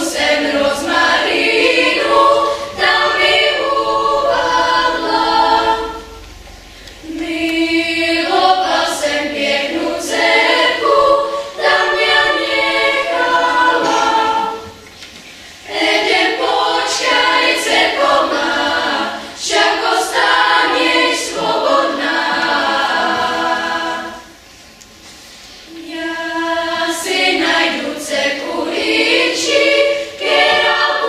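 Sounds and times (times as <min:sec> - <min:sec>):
children's choir singing: 0:00.0 - 0:24.5, 0:25.6 - 0:31.0.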